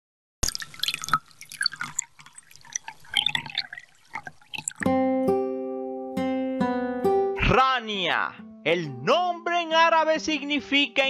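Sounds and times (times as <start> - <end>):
water drops dripping into water: 0.4 - 4.9.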